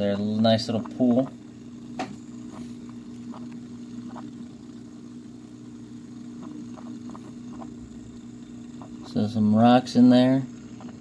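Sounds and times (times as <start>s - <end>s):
water pump humming: 0.0s - 11.0s.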